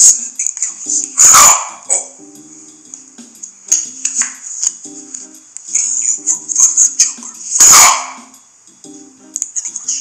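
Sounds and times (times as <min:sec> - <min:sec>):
music with sustained low tones: 0:00.0 - 0:10.0
dog bark: 0:01.2 - 0:02.1, 0:07.6 - 0:08.3.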